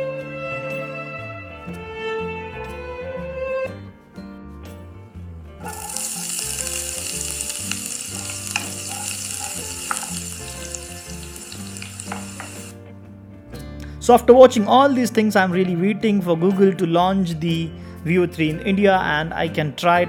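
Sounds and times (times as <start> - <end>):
quiet background music: 0.0 - 20.0
onions sizzling in a pan: 5.6 - 12.8.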